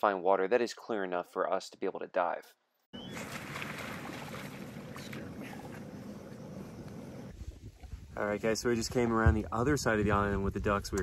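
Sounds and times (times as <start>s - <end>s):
motorboat engine running: 3.0s - 7.3s.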